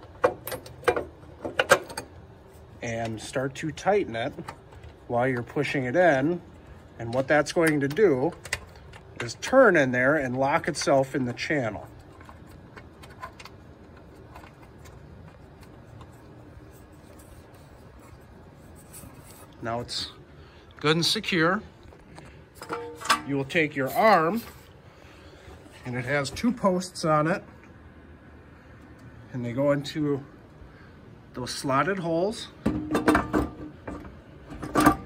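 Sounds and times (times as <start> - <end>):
low room hum: 0.0 - 35.0.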